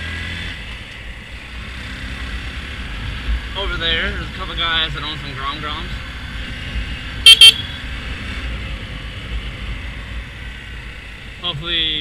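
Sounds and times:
motorcycle engine rumble: 0:00.0 - 0:12.0
motorcycle horn toots: 0:07.2 - 0:07.7.

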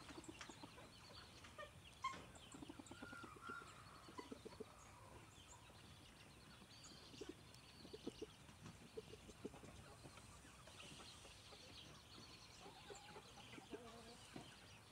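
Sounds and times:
roosters clucking and pecking: 0:00.0 - 0:14.9.

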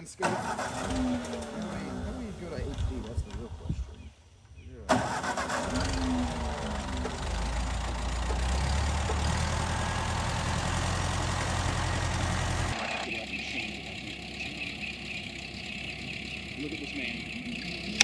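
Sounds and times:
tractor engine starting and running: 0:00.0 - 0:04.1, 0:04.8 - 0:18.0.

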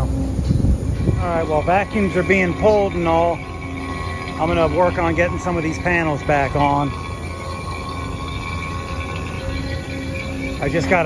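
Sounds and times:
vacuum pump humming: 0:00.0 - 0:11.0.

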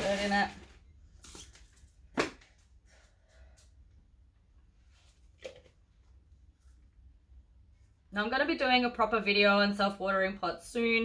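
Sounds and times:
soil scraping and rustling: 0:00.0 - 0:00.6.

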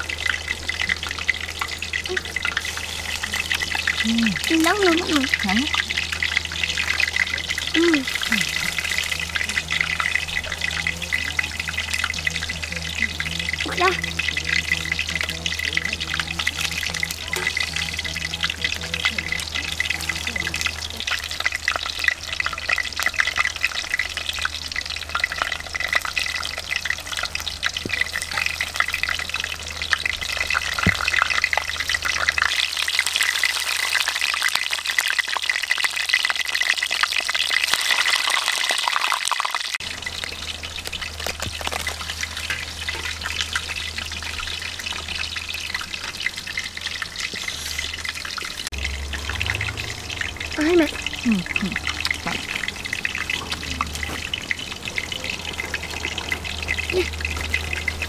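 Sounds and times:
fish sizzling in hot oil: 0:00.0 - 0:58.0.

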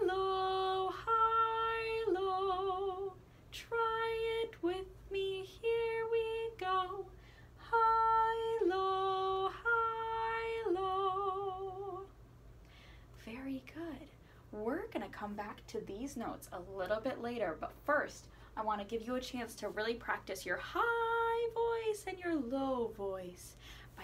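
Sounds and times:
woman singing unaccompanied: 0:00.0 - 0:12.2, 0:19.6 - 0:24.0.

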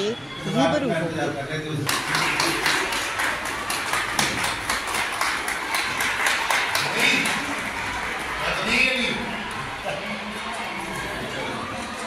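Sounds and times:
people clapping: 0:01.8 - 0:12.0.

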